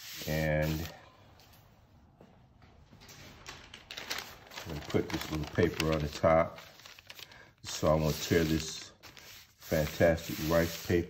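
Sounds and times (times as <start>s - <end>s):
faint soft handling noises: 0.6s - 9.4s.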